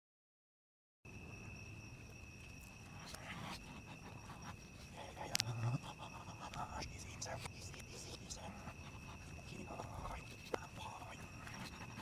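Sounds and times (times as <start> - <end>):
high-pitched insect trill: 1.1 - 12.0.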